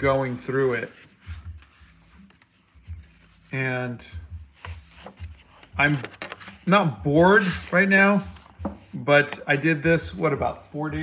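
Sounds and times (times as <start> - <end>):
paper pages rustling: 0.3 - 3.6, 4.4 - 9.7
dull bumps of book handling: 7.6 - 9.5.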